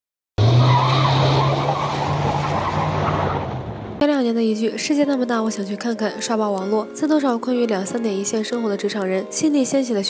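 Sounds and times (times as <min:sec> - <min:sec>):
tire screech: 0:00.4 - 0:04.0.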